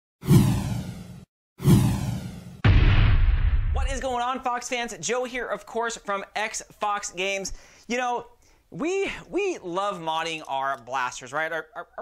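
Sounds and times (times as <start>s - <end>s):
whoosh sound effects: 0.2s - 4.1s.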